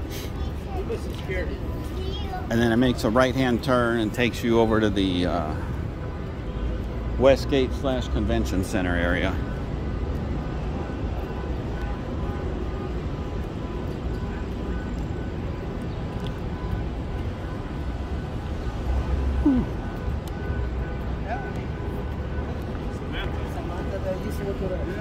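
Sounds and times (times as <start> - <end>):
traffic rumble: 0.0 - 25.0
voices of passers-by: 0.0 - 25.0.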